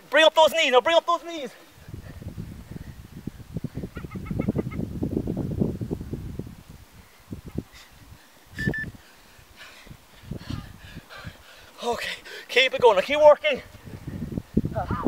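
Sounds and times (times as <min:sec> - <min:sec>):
wind buffeting microphone: 0:01.8 - 0:11.7, 0:13.2 - 0:15.0.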